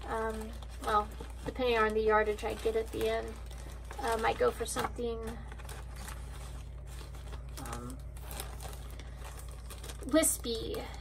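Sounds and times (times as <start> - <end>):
plastic bag crinkling: 0.0 - 11.0
steady low hum: 0.0 - 11.0.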